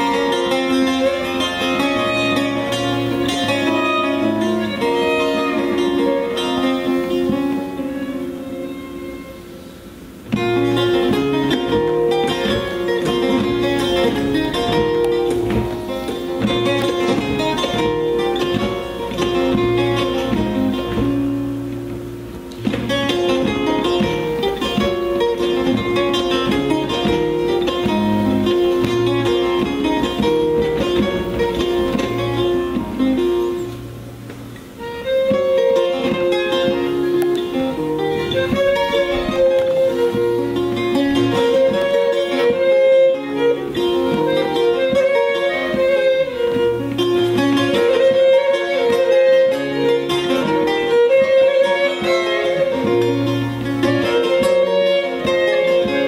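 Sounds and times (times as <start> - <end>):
plucked lute: 0.0 - 56.0
violin: 0.0 - 56.0.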